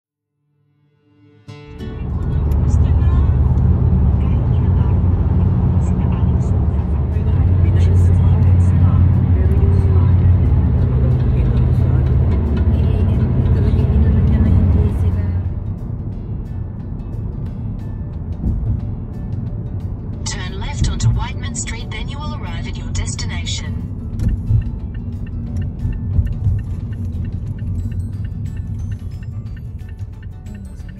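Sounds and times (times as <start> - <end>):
music: 0.4 - 30.9
car road rumble from inside: 1.7 - 30.9
voices: 2.0 - 15.4.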